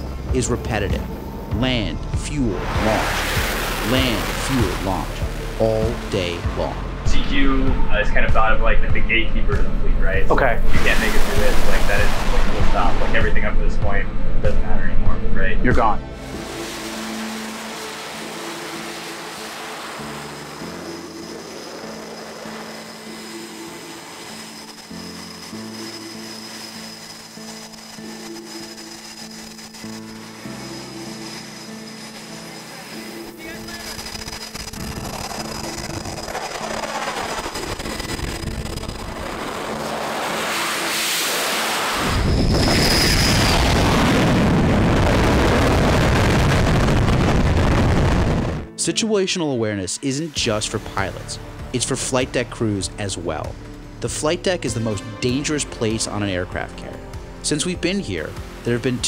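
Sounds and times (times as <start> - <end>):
jet engines roaring: 0.0 - 7.1, 16.2 - 48.7
background music with held notes: 0.0 - 33.8, 48.7 - 59.0.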